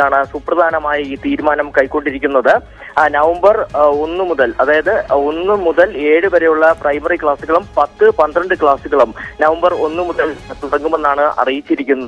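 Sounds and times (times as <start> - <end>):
man speaking over telephone: 0.0 - 12.0.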